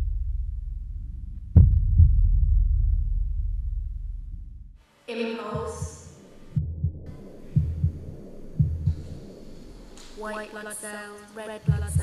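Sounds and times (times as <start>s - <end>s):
heartbeat lub-dub: 0.0s - 4.7s, 5.5s - 10.8s, 11.6s - 12.0s.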